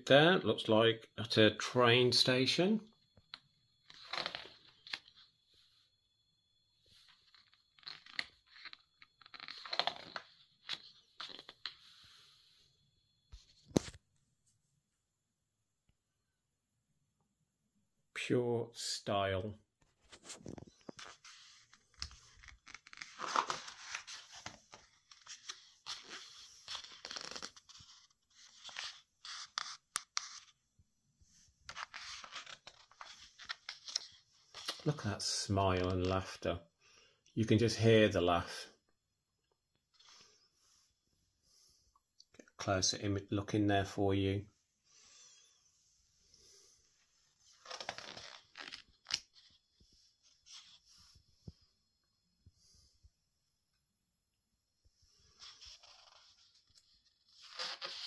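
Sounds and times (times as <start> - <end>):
book pages turning: 3.9 - 5.2, 7.1 - 11.9, 13.4 - 14.0, 19.8 - 30.6, 31.6 - 35.2, 47.4 - 50.9, 55.2 - 58.0.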